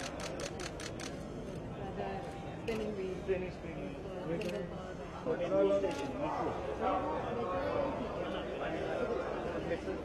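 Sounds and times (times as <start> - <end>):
camera shutter clicks: 0.0 - 1.2, 4.4 - 4.6.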